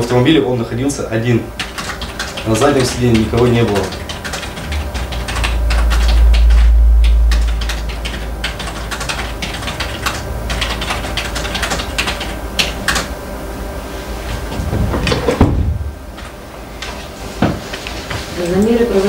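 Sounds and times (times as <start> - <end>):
loud low rumble: 4.4 - 9.4.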